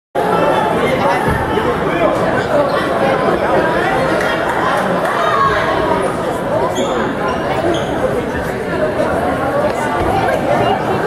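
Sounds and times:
spectators chattering: 0.2 - 11.0.

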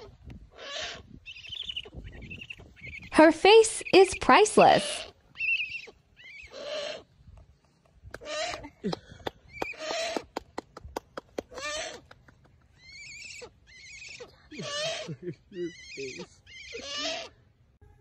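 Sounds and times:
owl hissing calls: 0.6 - 3.1, 4.7 - 7.1, 15.7 - 17.4.

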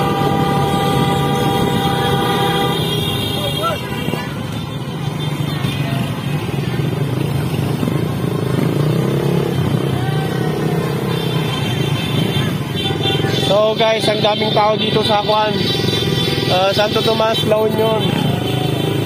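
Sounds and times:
motorcycle engine running: 0.0 - 13.6
other motorcycle engines: 0.0 - 19.0.

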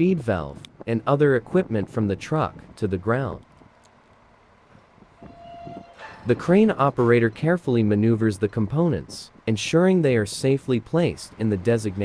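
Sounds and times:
horn-like tone: 5.2 - 6.2.

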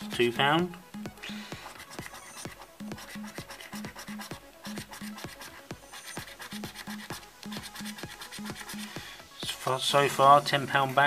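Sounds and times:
background music with steady beat: 0.0 - 11.0
coin scratching scratchcard: 1.2 - 9.0.

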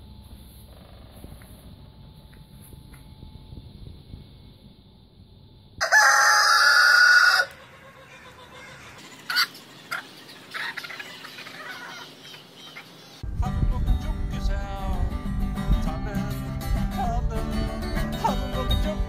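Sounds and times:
rooster crowing: 5.8 - 10.0
acoustic guitar music: 13.2 - 19.0.

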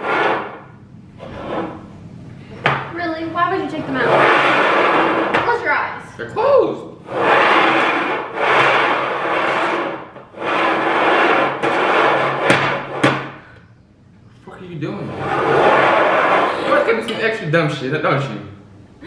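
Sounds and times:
bowls scraping on wooden table: 0.0 - 2.0, 3.7 - 5.6, 7.0 - 13.3, 15.0 - 17.2.

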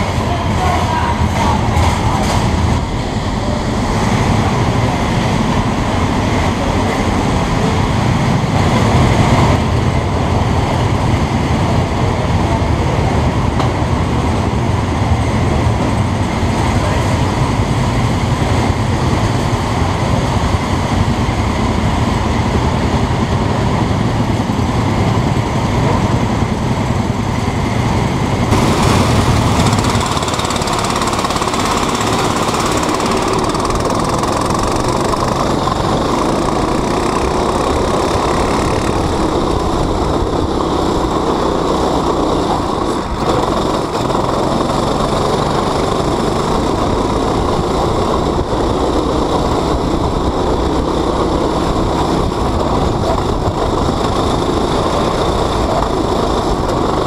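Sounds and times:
go-kart engine drone: 0.0 - 57.0.

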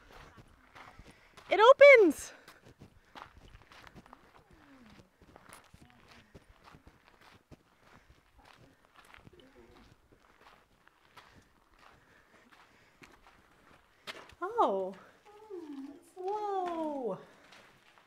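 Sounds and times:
quiet footsteps: 0.0 - 18.0.

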